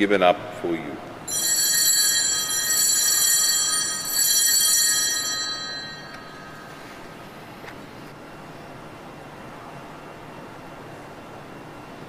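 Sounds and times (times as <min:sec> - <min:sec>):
bells jingling: 0:01.3 - 0:06.9.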